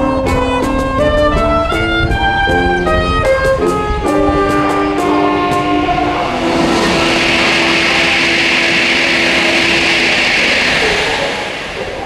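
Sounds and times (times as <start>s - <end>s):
saxophone ensemble holding note: 3.9s - 10.0s
loud broad rushing noise: 4.0s - 12.0s.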